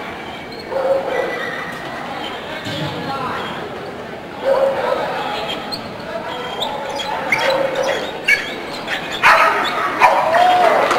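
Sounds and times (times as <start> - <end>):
dog barking: 0.7 - 1.6, 4.4 - 5.1, 9.2 - 10.5.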